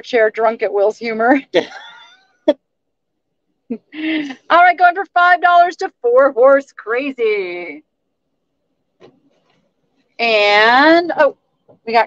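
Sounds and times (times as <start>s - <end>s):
woman speaking: 0.0s - 1.7s, 4.3s - 7.8s, 10.2s - 12.0s.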